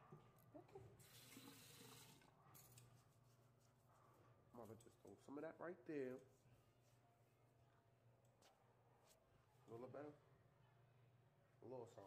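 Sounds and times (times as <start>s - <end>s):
faint room hum: 0.0s - 12.0s.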